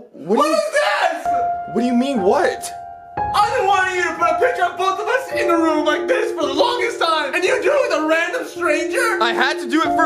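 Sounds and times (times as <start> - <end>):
man's wordless voice: 1.4 - 10.0.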